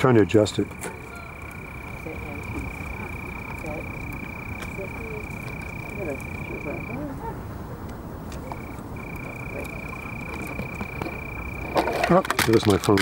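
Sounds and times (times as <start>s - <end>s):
steady high-pitched tone: 0.0s - 7.1s, 8.4s - 12.4s
faint voices: 0.0s - 13.0s
phone clattering on pavement: 10.3s - 13.0s.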